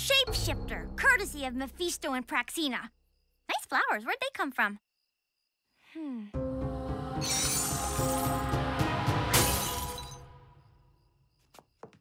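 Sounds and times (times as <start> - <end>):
background music: 6.4 - 10.6
cartoon glass shattering: 7.2 - 8.5, 9.4 - 10.3.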